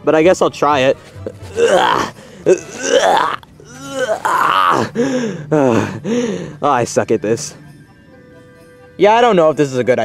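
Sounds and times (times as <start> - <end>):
man groaning and grunting with strain: 1.4 - 6.4.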